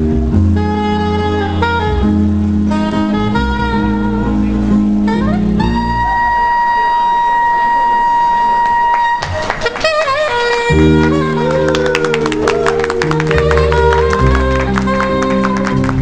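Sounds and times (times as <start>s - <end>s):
saxophone melody: 0.0s - 16.0s
upright double bass: 0.0s - 16.0s.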